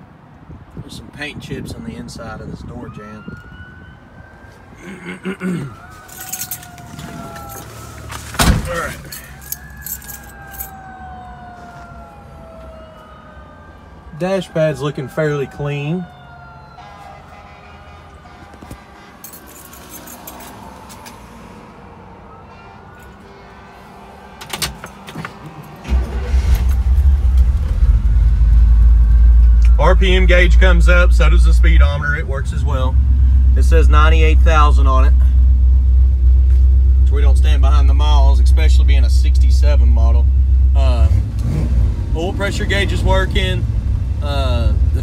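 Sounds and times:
distant siren wailing: 2.6 - 33.4
man clearing throat: 4.8 - 5.8
keys jangling: 6.1 - 6.7, 8.7 - 10.8, 19.2 - 20.6
car engine starting and idling: 24.4 - 45.0.

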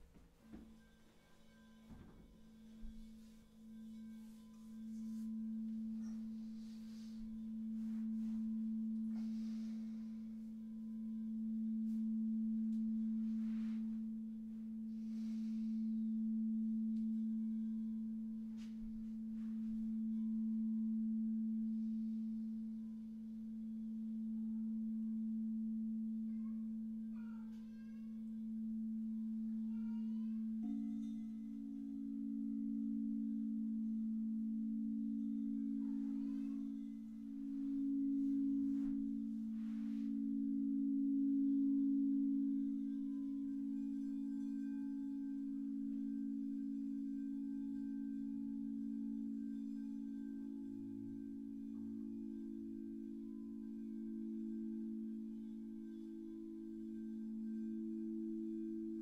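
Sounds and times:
higher singing bowl: 0.0 - 59.0
singing bowl low tone: 0.0 - 59.0.

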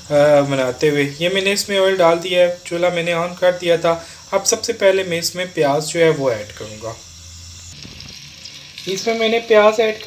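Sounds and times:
onions sizzling in hot oil: 0.0 - 10.0.

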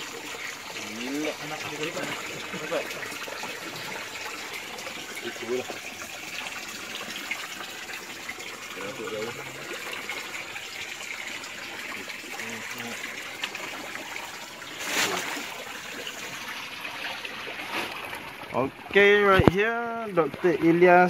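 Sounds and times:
creek water trickling: 0.0 - 21.0.

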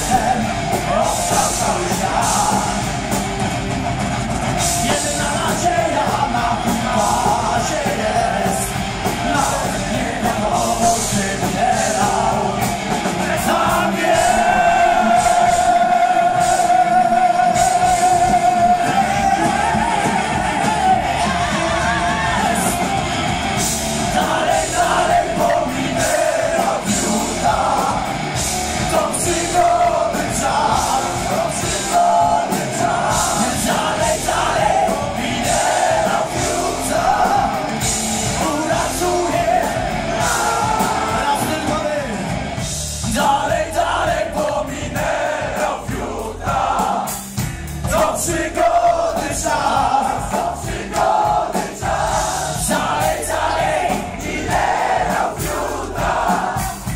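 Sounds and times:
crowd voices: 0.0 - 56.9
heavy metal band playing live: 0.0 - 56.9
person singing: 24.2 - 28.2, 28.9 - 42.2.

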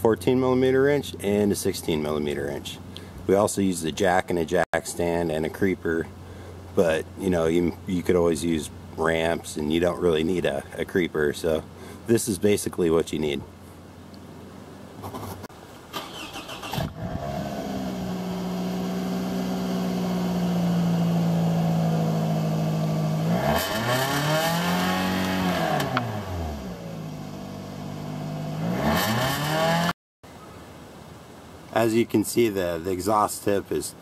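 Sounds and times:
car engine idling and revving: 16.8 - 29.9.

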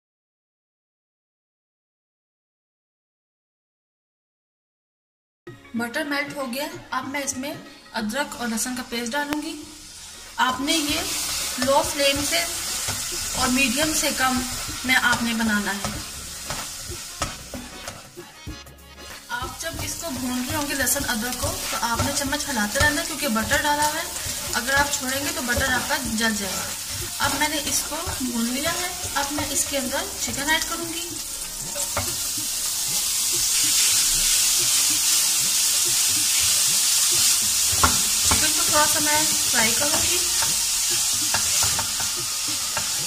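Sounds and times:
background music: 5.5 - 43.0
paste sizzling in butter: 9.5 - 43.0
spatula scraping a metal pan: 10.0 - 18.2, 19.0 - 30.4, 31.4 - 35.6, 36.3 - 43.0
spatula knocking against pan: 19.5 - 26.2, 36.3 - 39.0, 41.3 - 43.0.

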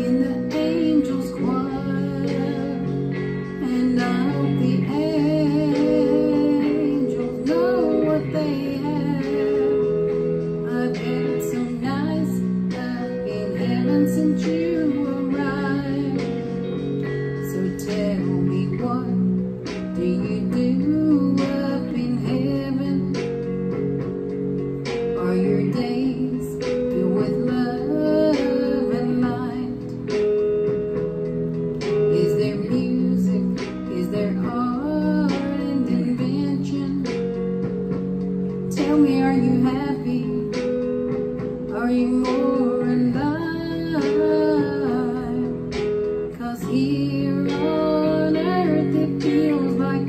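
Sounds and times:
woman singing: 0.0 - 31.0, 31.7 - 50.0
guitar accompaniment: 0.0 - 50.0.

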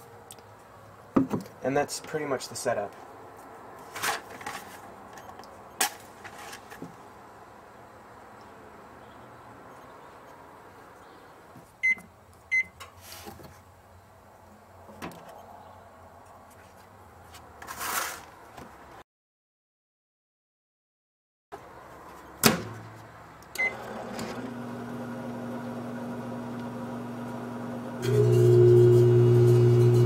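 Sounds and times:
microwave keypad beeping: 23.6 - 23.9
microwave oven humming: 23.6 - 30.0.

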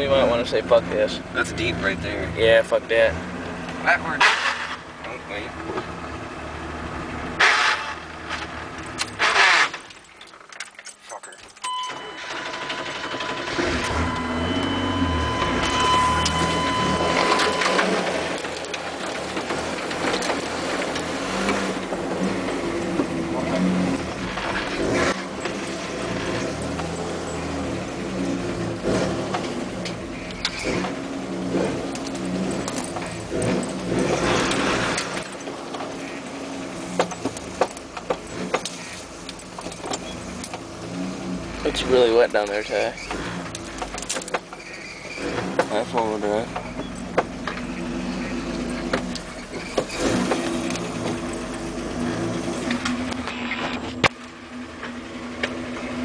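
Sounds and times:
truck engine running under load: 11.5 - 56.0
steady high tone: 11.6 - 18.4.

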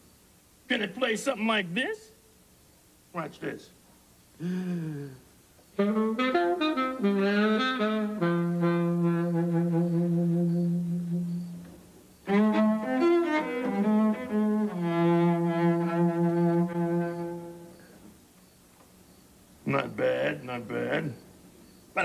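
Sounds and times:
saxophone phrase: 5.8 - 11.6, 12.3 - 17.8
cello phrase: 12.3 - 17.9.

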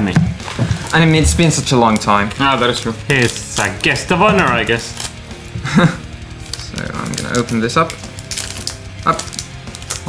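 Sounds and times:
quiet background music: 0.0 - 10.0
foil wrapper crinkling and tearing: 0.4 - 10.0.

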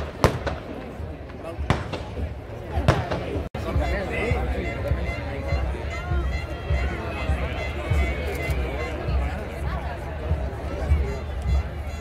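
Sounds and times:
firecracker bangs: 0.0 - 3.5
murmur of crowd voices: 0.0 - 12.0.

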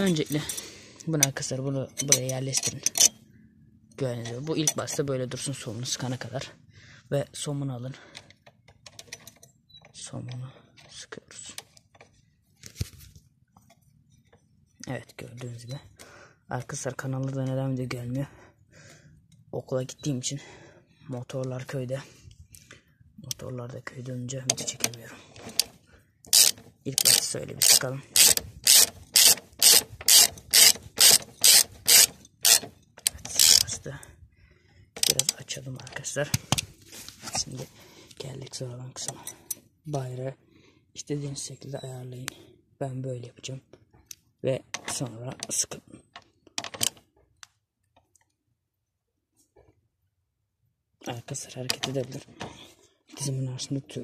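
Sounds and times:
light metal clicks of wrench: 0.0 - 3.2, 3.9 - 5.1, 8.1 - 12.1, 24.4 - 33.8, 35.0 - 36.7
ratchet wrench clicking: 2.0 - 3.2, 26.3 - 33.8, 35.0 - 35.4.

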